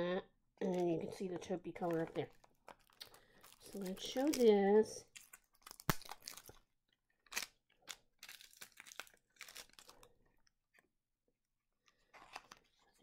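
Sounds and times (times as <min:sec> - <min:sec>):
packaging crinkling and rustling: 0:01.7 - 0:10.8, 0:12.0 - 0:13.0.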